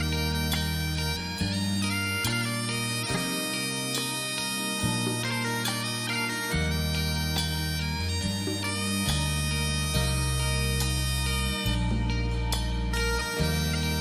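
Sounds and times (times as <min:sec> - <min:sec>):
bagpipe melody over drones: 0:00.0 - 0:14.0.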